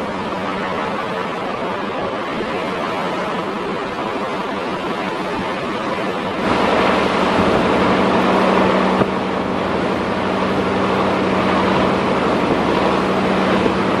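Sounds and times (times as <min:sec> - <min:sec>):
low engine drone: 0:00.0 - 0:14.0
river water rushing and splashing: 0:00.0 - 0:14.0
wind buffeting microphone: 0:00.0 - 0:14.0.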